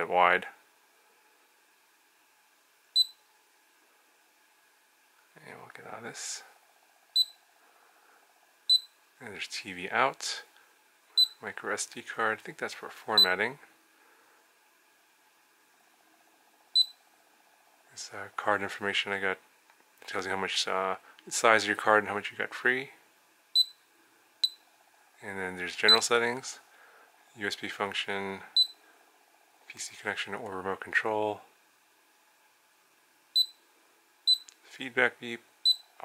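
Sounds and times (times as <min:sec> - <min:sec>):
faint steady hum: 0:00.0 - 0:36.0.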